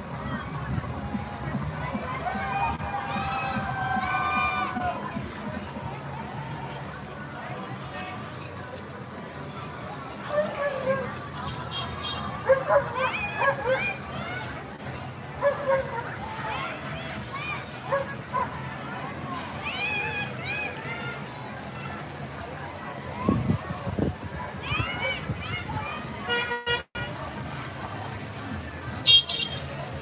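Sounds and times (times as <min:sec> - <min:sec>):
people's voices: 0:00.0 - 0:30.0
vehicle horn toot: 0:26.3 - 0:27.1, 0:29.0 - 0:29.7.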